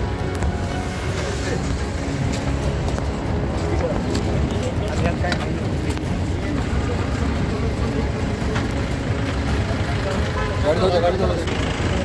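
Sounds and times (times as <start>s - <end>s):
indistinct voices: 0.0s - 12.0s
street traffic rumble: 0.0s - 12.0s.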